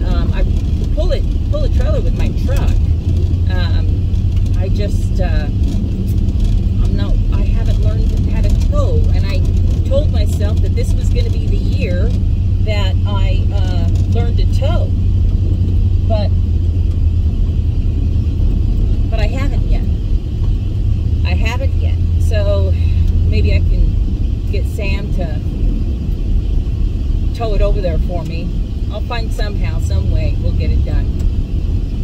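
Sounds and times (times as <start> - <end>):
woman speaking: 0.0 - 2.9, 3.5 - 4.0, 4.6 - 5.6, 6.8 - 15.0, 16.0 - 16.3, 19.1 - 19.9, 21.2 - 25.4, 27.4 - 31.1
road noise inside cab: 0.0 - 32.0
vehicle engine rumble: 0.0 - 32.0.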